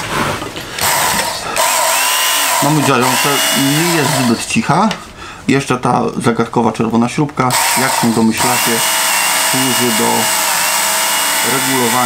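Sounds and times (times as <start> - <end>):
belt sharpener motor whirring: 0.8 - 4.4, 7.5 - 12.0.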